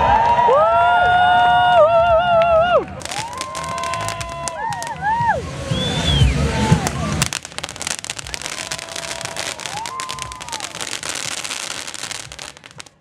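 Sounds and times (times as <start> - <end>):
spark fountains crackling: 3.0 - 5.0, 6.6 - 13.0.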